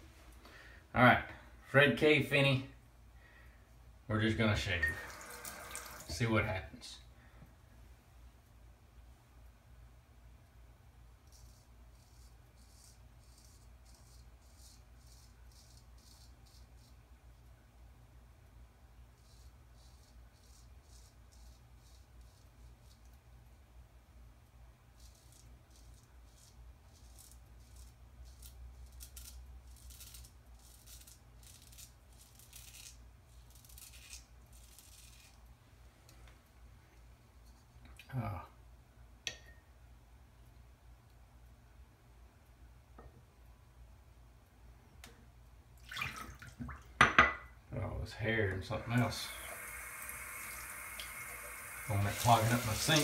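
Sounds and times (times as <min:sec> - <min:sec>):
razor scraping stubble: 0:11.2 - 0:17.0, 0:51.4 - 0:53.0.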